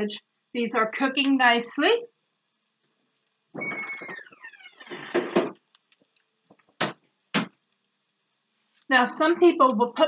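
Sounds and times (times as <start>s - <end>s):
refrigerator door squeak: 3.6s - 5.0s.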